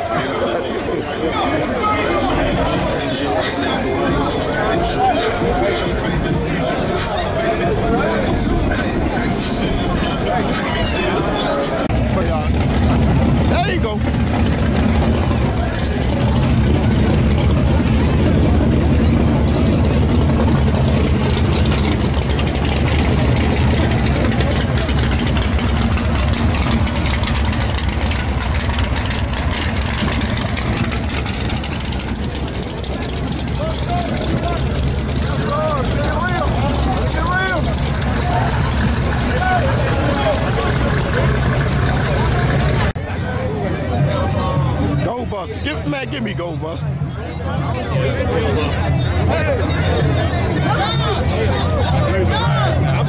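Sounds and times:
crowd voices: 0.0 - 53.0
race car engine idling: 1.7 - 43.0.

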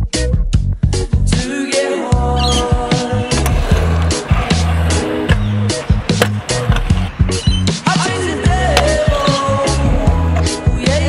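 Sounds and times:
scooter wheels clattering on concrete: 2.4 - 10.6.

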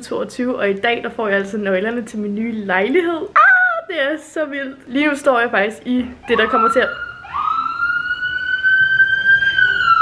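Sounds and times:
emergency siren rising tone: 6.2 - 10.0
second siren sliding up: 6.2 - 10.0.

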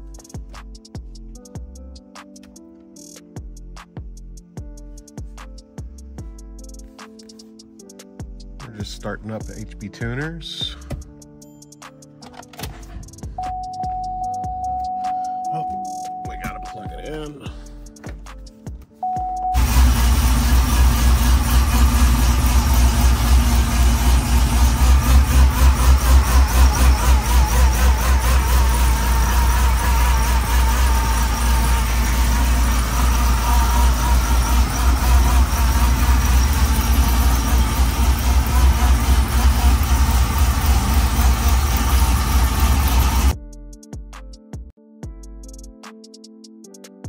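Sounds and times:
short tone: 13.4 - 17.2, 19.0 - 19.8
car engine running: 19.5 - 43.4.

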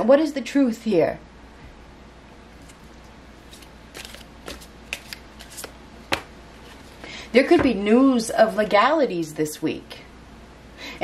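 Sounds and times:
cards snapping and tapping: 3.5 - 6.3.

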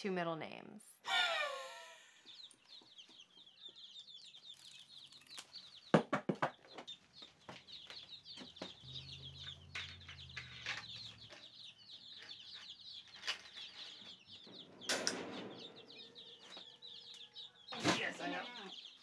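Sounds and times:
chicks peeping: 1.0 - 19.0.

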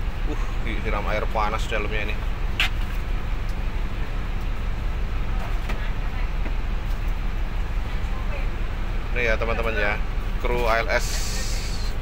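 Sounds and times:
bus engine idling: 0.0 - 12.0.

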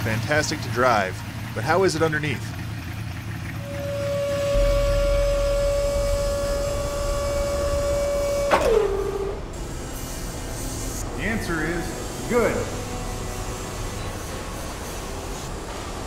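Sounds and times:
hydraulic pump motor whining: 2.8 - 16.0.

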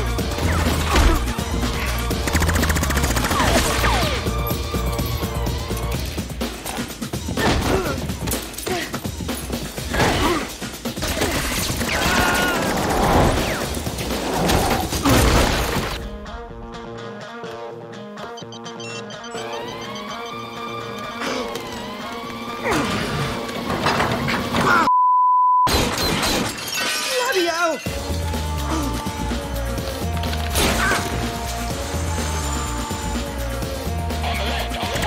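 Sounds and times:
action music: 0.0 - 24.9, 27.4 - 35.0
smashing and breaking impacts: 14.5 - 16.0
sustained electronic tones: 18.3 - 20.7
steady beep: 24.9 - 25.7.

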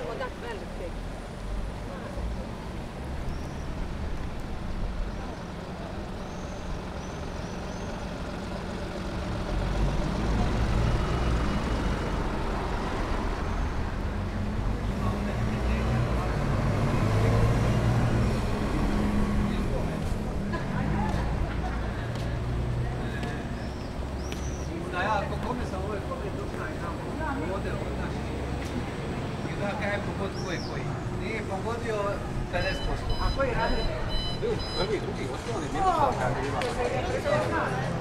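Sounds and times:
people talking: 0.0 - 1.0, 19.4 - 23.5, 24.7 - 38.0
large vehicle engine rumbling: 0.0 - 38.0.

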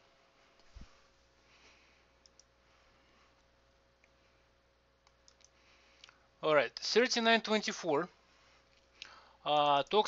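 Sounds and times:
computer mouse clicks: 2.2 - 2.5, 5.0 - 6.2.

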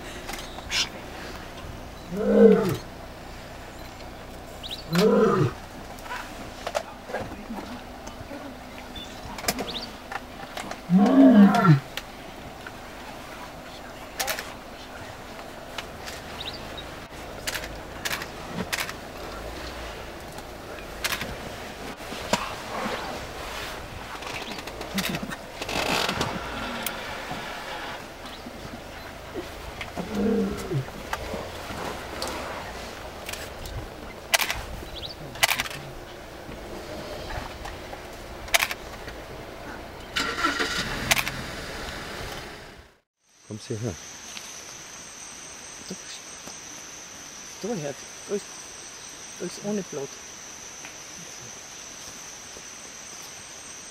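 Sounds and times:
vehicle engines idling: 0.0 - 44.0
sharp clicks: 33.2 - 34.6, 38.5 - 39.1.

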